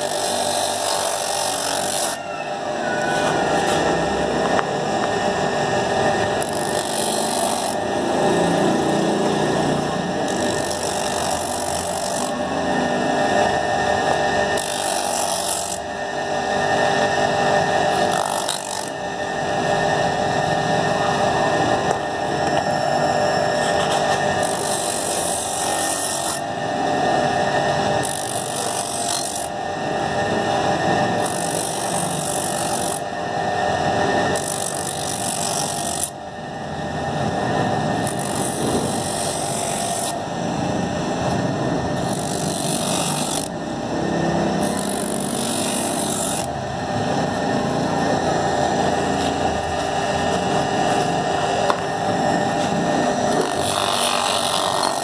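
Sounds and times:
hissing abrasive rasp: 0:00.0 - 0:03.9, 0:23.6 - 0:26.5, 0:34.1 - 0:36.2, 0:42.0 - 0:46.5
grinding wheel running: 0:00.0 - 0:55.0.

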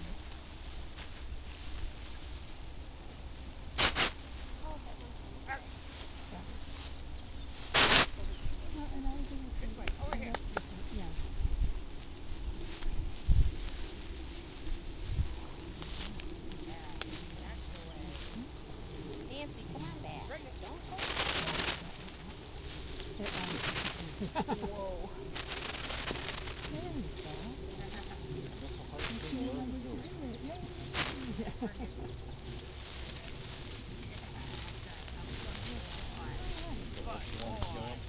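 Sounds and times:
dog whistle blasts: 0:03.8 - 0:04.6, 0:07.7 - 0:08.5.

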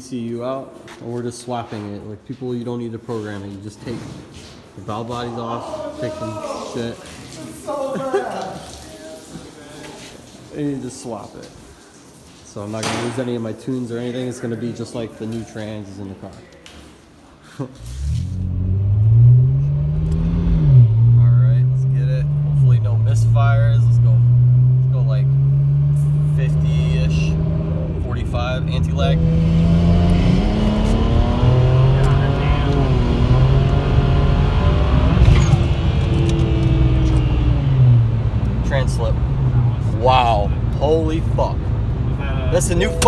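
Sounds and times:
car engine running: 0:18.3 - 0:39.9.

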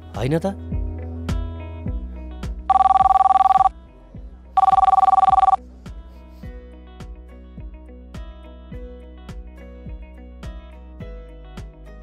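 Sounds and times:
soft background music: 0:00.0 - 0:12.0
telephone ringing: 0:02.7 - 0:03.7, 0:04.6 - 0:05.6.

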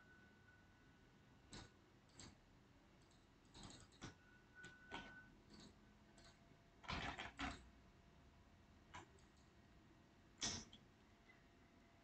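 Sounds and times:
mouse and keyboard clicks: 0:01.5 - 0:02.4, 0:03.0 - 0:07.7, 0:08.9 - 0:09.5, 0:10.4 - 0:10.8.

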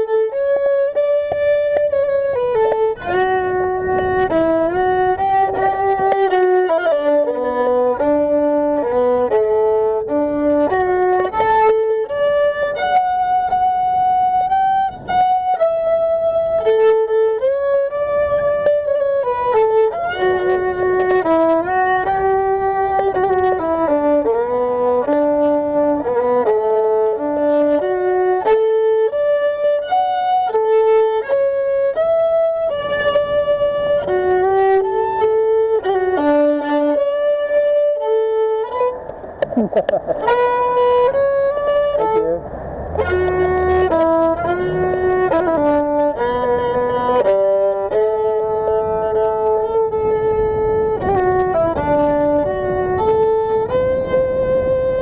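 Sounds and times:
violin melody: 0:00.0 - 0:55.0.

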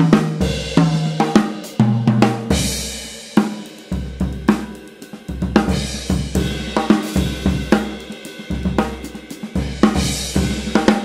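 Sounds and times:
drum kit groove with fills: 0:00.0 - 0:11.0.

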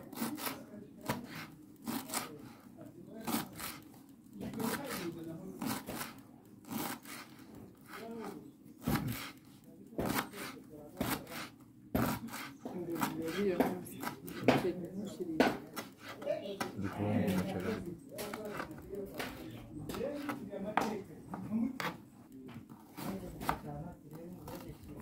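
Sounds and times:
scraping strokes: 0:04.5 - 0:20.5
voices talking: 0:12.6 - 0:22.6.

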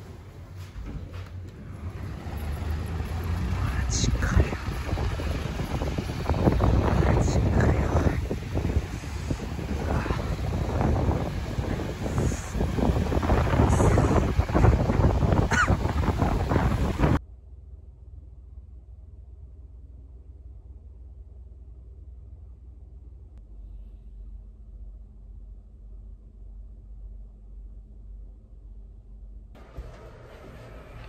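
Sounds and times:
cars driving through slush: 0:01.6 - 0:17.2
wind buffeting microphone: 0:01.7 - 0:17.2.

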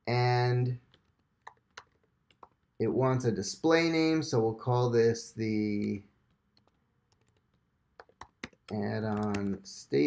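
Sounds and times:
keyboard keystrokes: 0:06.6 - 0:09.6.

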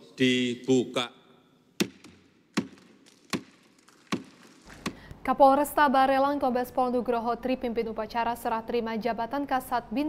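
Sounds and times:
wooden gavel knocking on desk: 0:01.8 - 0:05.0.

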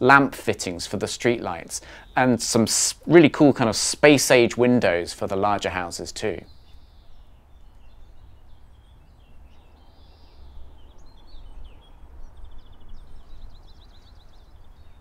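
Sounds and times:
small birds chirping: 0:00.0 - 0:15.0.

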